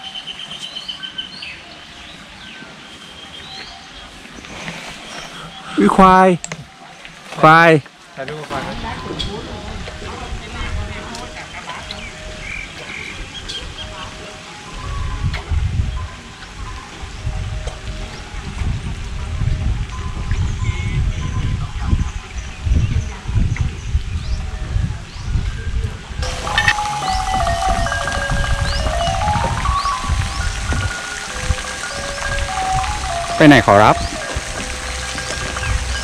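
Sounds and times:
wind on microphone: 8.5 - 36.0
background music: 26.2 - 36.0.

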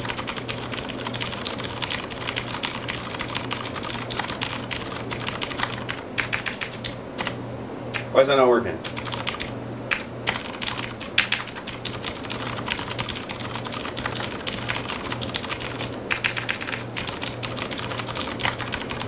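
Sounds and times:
fast typing on mechanical keyboard: 0.0 - 7.4, 8.8 - 19.0.

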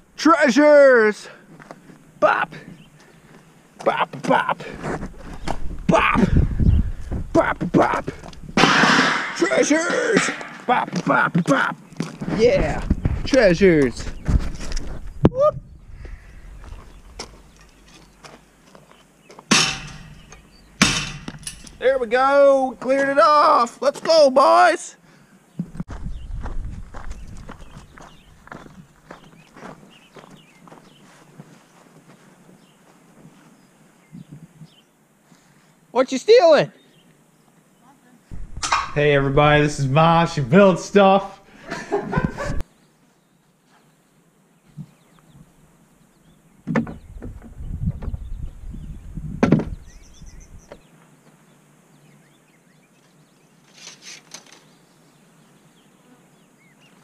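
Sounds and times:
low thumps: 5.5 - 9.4, 38.3 - 39.8
junk crashing off scrap pile: 8.6 - 10.7
metal rattle: 8.6 - 10.8, 19.5 - 21.8.

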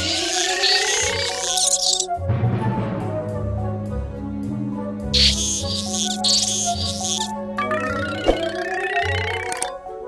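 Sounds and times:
dolphin clicking squeaks: 0.0 - 2.1, 5.2 - 7.3
background music low note: 2.0 - 10.0.

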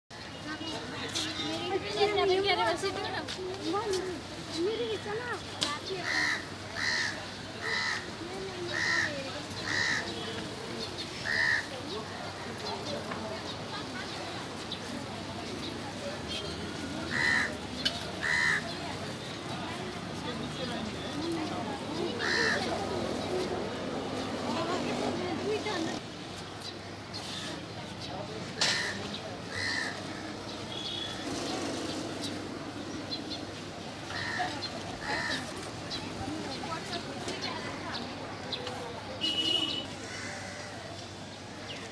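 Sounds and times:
murmur of voices: 0.1 - 41.9
crow cawing: 6.0 - 8.1, 8.7 - 10.2, 17.1 - 17.6, 18.2 - 18.7, 22.2 - 22.7, 28.6 - 30.0, 40.0 - 40.8.

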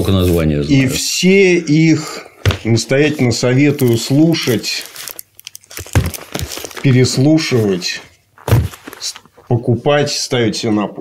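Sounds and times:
plastic sleeve crinkling: 2.5 - 9.6.

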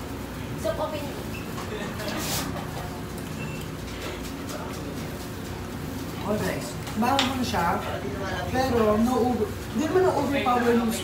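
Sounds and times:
faint background voices: 3.8 - 6.7.

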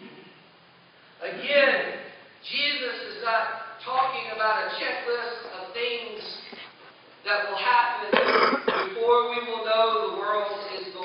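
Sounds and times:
man speaking: 1.2 - 11.0
man clearing throat: 8.1 - 9.0.

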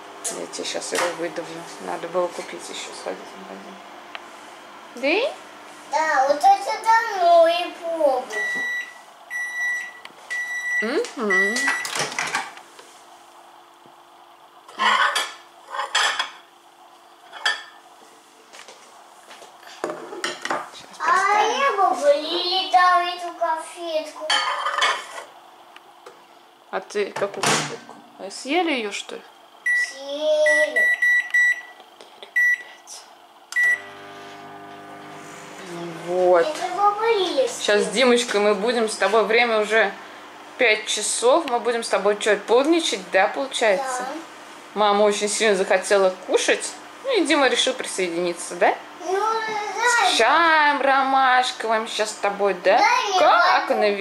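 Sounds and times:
microwave oven humming: 0.0 - 54.0
microwave oven beeping: 8.3 - 12.6, 29.6 - 31.8, 32.4 - 32.7, 33.5 - 36.2.

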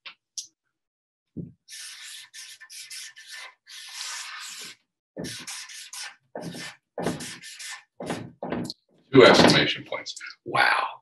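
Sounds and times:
marker drawing on paper: 1.6 - 8.7.

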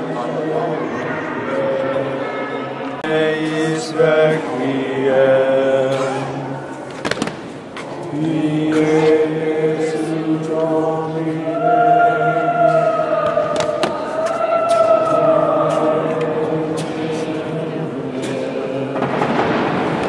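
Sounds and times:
choir chanting: 0.0 - 6.9, 7.8 - 20.0.

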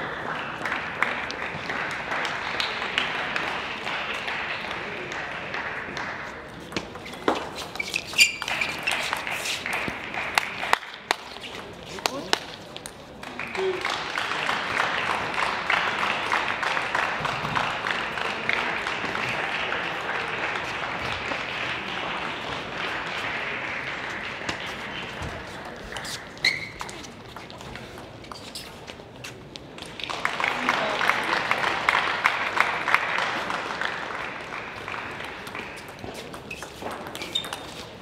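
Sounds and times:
spectators applauding: 0.0 - 6.5, 8.4 - 11.2, 13.1 - 27.0, 29.8 - 36.2.

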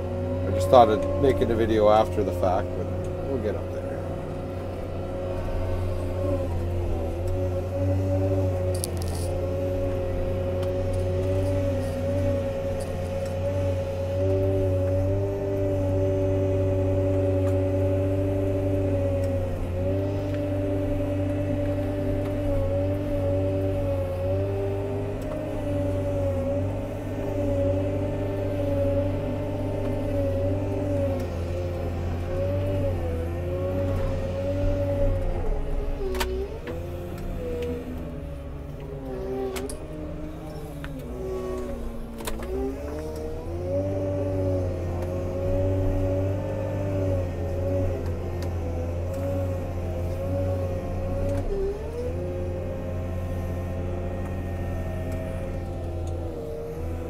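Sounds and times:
diesel engine under load: 0.0 - 57.0.

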